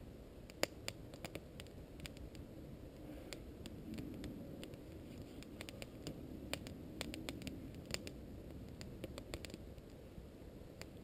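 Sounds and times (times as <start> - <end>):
low steady rumble: 0.0 - 11.0
campfire crackling and popping: 0.4 - 11.0.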